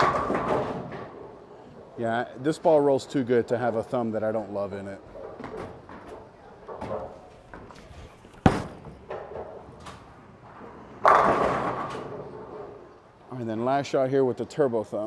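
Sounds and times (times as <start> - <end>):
bowling ball thud: 0.0 - 1.2, 6.7 - 9.8, 11.0 - 12.5
bowling pins crashing: 0.0 - 1.3, 8.3 - 9.9, 11.0 - 12.6
bowling ball rolling: 0.0 - 2.0, 5.0 - 13.0.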